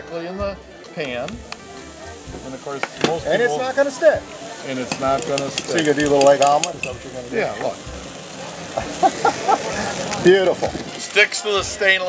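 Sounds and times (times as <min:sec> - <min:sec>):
cheese sizzling in a pan: 0:00.7 - 0:12.0.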